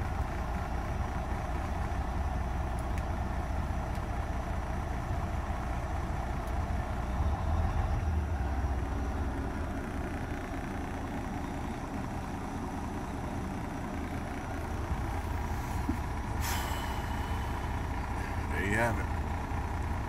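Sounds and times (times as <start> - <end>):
diesel truck engine idling: 0.0 - 20.0.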